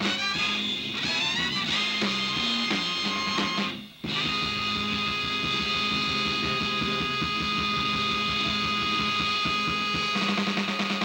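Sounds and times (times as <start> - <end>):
electric guitar: 0.0 - 11.0
live band playing: 0.0 - 11.0
quick steady drum beat: 0.0 - 11.0.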